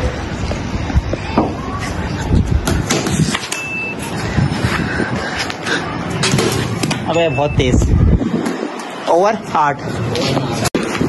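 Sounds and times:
background traffic noise: 0:00.0 - 0:11.0
short high beep: 0:03.5 - 0:04.0, 0:07.1 - 0:07.8.

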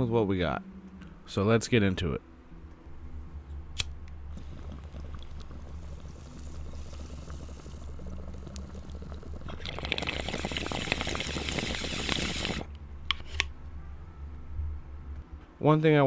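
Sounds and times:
low steady hum: 0:00.0 - 0:16.0
loud hissing crackling noise: 0:03.8 - 0:12.8.

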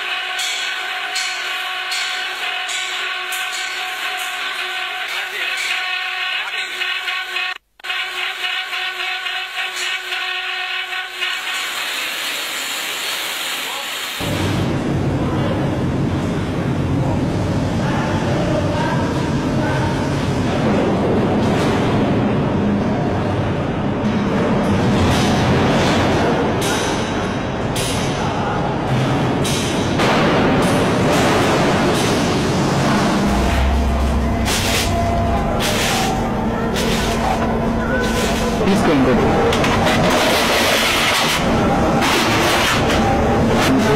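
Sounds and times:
noisy machinery din: 0:00.0 - 0:13.0, 0:14.2 - 0:43.9.

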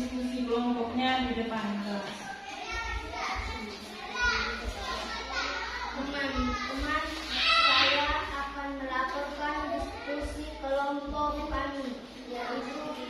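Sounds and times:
children chattering: 0:00.0 - 0:13.0.

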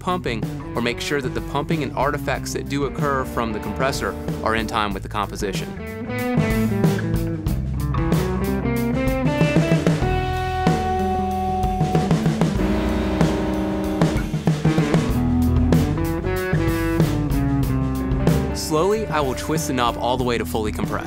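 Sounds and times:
bass: 0:00.0 - 0:21.0
drum kit beat: 0:00.0 - 0:21.0
electric guitar: 0:05.5 - 0:20.0.

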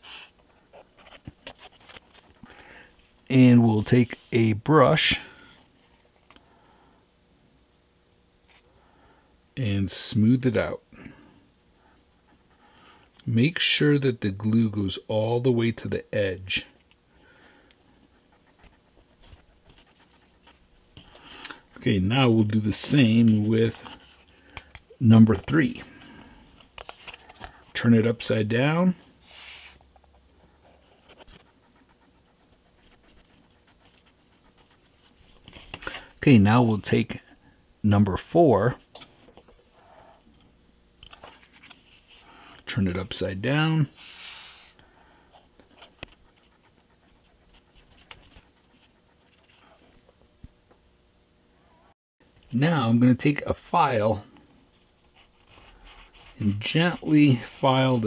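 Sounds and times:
glue brush rustling on cardstock: 0:22.4 - 0:24.3, 0:54.7 - 0:58.0
faint paper and bottle handling: 0:22.5 - 0:27.8.

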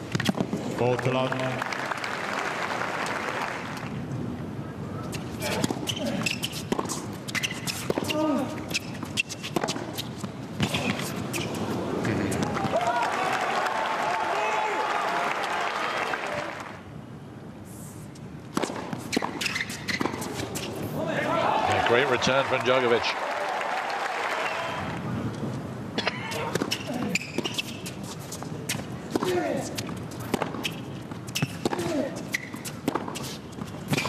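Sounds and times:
crowd applause: 0:00.9 - 0:03.9, 0:12.6 - 0:16.8, 0:21.4 - 0:25.0
tennis ball bouncing: 0:05.6 - 0:11.6, 0:18.5 - 0:20.6, 0:28.7 - 0:34.0.

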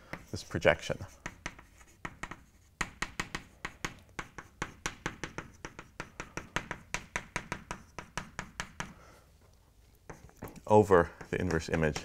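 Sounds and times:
chalk tapping and scratching: 0:00.0 - 0:09.0, 0:10.0 - 0:12.0.

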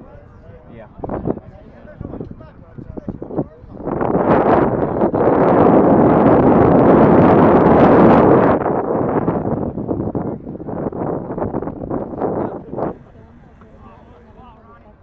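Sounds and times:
wind buffeting microphone: 0:00.0 - 0:14.7.

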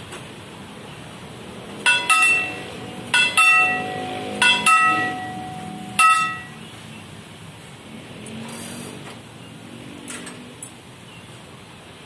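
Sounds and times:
signal bell ringing: 0:01.8 - 0:06.6.

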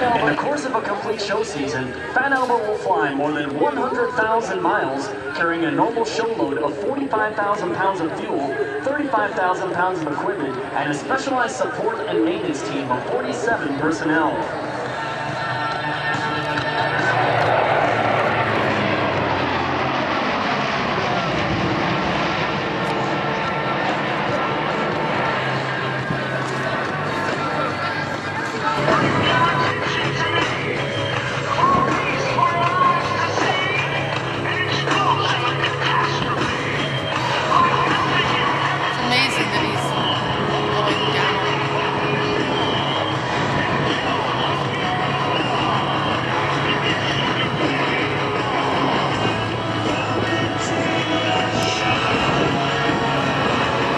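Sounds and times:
turboprop aircraft passing overhead: 0:00.0 - 0:53.9
engine whine falling in pitch: 0:14.6 - 0:39.0.

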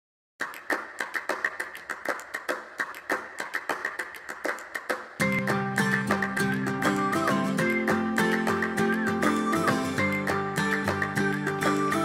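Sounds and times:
background music: 0:05.2 - 0:12.0
light dry percussive taps: 0:05.2 - 0:12.0.

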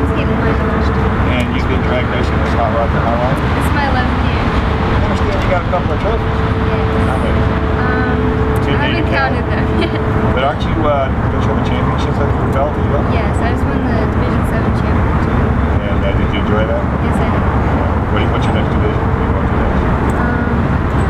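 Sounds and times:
indistinct voices talking: 0:00.0 - 0:21.0
low rumble: 0:00.0 - 0:21.0
steady hum: 0:00.0 - 0:21.0.

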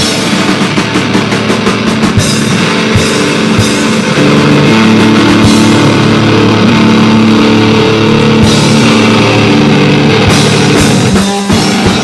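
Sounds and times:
drum kit: 0:00.0 - 0:12.0
electric guitar chords: 0:00.0 - 0:12.0.

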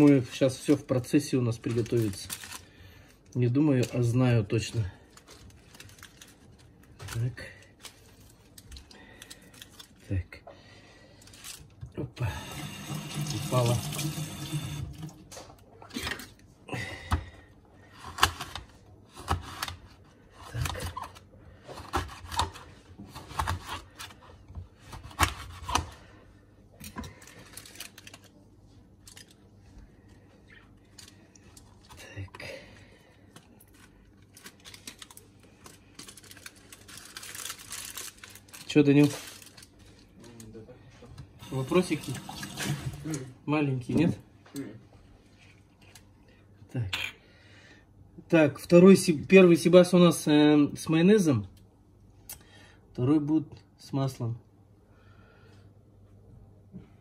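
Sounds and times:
aluminium foil crinkling: 0:00.0 - 0:10.3, 0:11.0 - 0:11.8, 0:27.0 - 0:29.5, 0:33.3 - 0:40.6.

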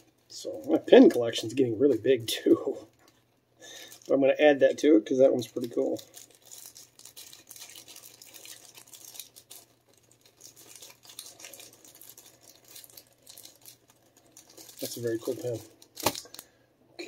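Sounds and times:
rustling of packaging: 0:00.0 - 0:16.6.

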